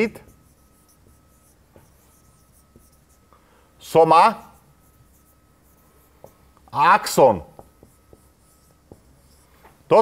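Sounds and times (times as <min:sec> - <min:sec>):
marker writing on whiteboard: 0:00.0 - 0:03.3, 0:04.3 - 0:06.5, 0:07.4 - 0:10.0
man speaking: 0:03.8 - 0:04.6, 0:06.7 - 0:07.5.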